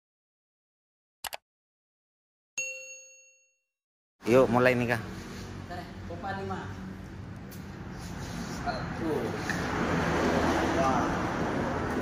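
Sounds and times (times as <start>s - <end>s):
notification bell ding: 2.6s - 3.6s.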